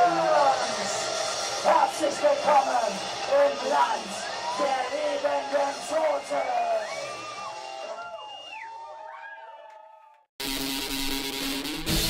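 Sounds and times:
wailing amplified tones: 0.0 - 9.9.

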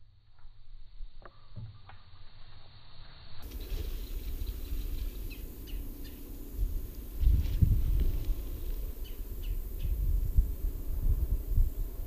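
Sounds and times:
faint bird chirps: 3.4 - 7.4, 8.4 - 10.2
wind on microphone: 3.4 - 12.0.

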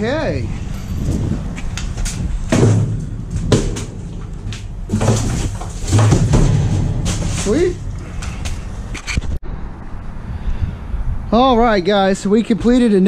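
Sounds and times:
hollow metal bangs and rattles: 1.8 - 8.9.

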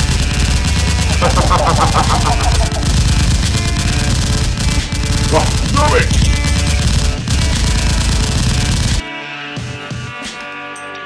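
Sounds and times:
rapid automatic gunfire: 0.0 - 9.0
background music: 0.0 - 11.0.

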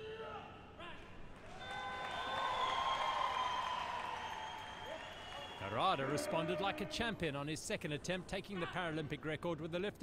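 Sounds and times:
crowd applauding: 1.4 - 6.7.

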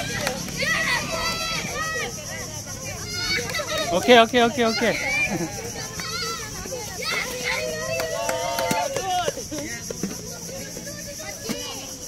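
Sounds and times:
adults and children calling out: 0.0 - 12.0.

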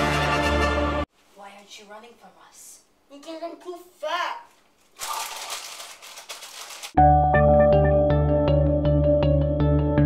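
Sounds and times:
crinkling and rustling: 4.5 - 7.0.

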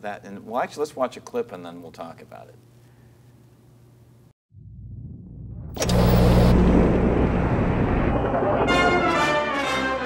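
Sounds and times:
brass band playing: 8.6 - 10.0.

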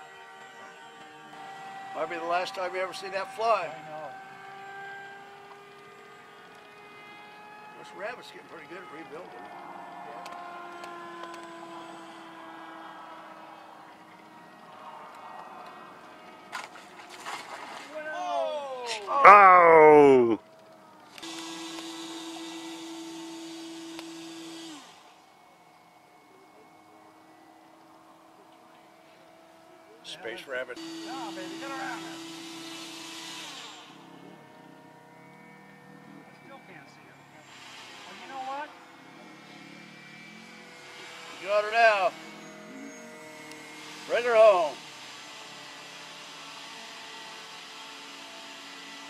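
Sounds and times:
model plane motor droning: 0.0 - 49.0.

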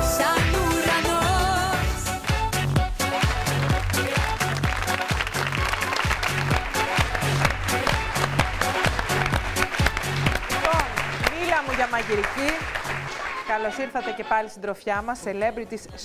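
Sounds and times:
theme music with dance beat: 0.0 - 16.0
audience applause: 3.1 - 13.8.

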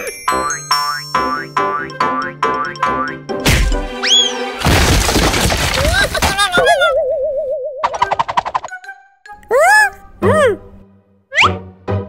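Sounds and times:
music: 0.0 - 5.1, 8.0 - 12.0
crashing noise: 4.6 - 6.5.

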